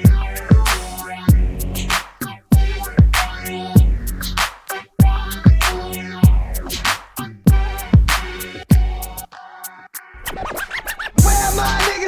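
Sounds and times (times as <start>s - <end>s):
hip hop beat: 0.0s - 12.0s
record scratching: 0.1s - 9.6s, 10.2s - 12.0s.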